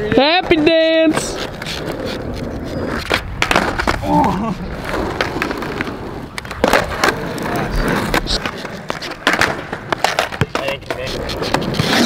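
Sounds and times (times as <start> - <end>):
skateboard tail clacks: 0.0 - 12.0
skateboard wheels rolling on asphalt: 0.0 - 12.0.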